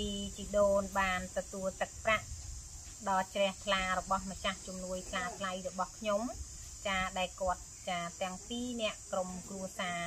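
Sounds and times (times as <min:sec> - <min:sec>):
woman speaking: 0:00.0 - 0:02.2, 0:03.0 - 0:10.0
insects chirring: 0:00.0 - 0:10.0.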